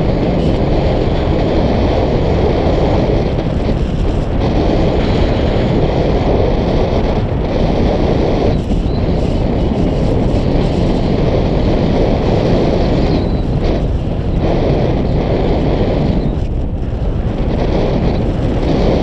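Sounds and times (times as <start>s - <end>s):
wind noise on microphone: 0.0s - 19.0s.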